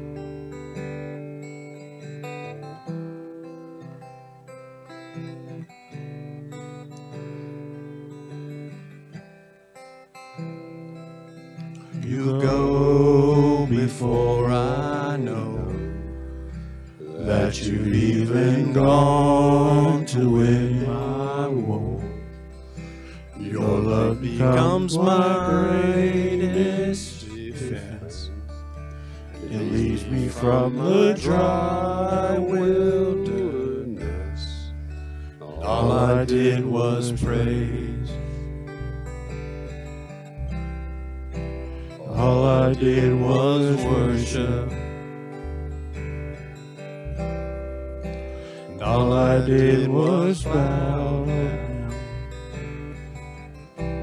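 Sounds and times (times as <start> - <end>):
acoustic guitar: 0.0 - 54.0
man singing: 12.0 - 16.1, 17.0 - 22.3, 23.2 - 28.5, 29.4 - 34.7, 35.5 - 38.3, 42.0 - 45.0, 48.7 - 52.3
electric bass: 12.0 - 54.0.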